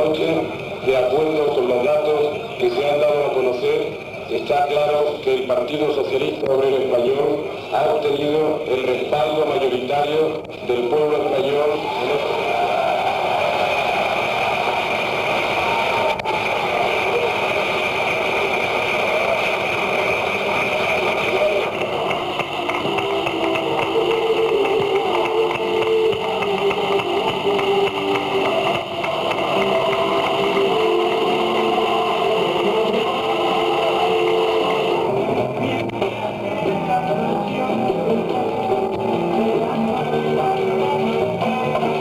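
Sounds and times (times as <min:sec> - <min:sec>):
indistinct voices: 0:00.0 - 0:42.0
steady high hum: 0:10.4 - 0:40.1.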